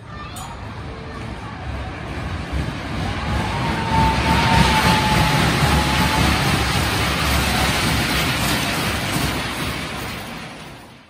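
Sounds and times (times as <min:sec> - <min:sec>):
ride car running on track: 0:00.0 - 0:11.0.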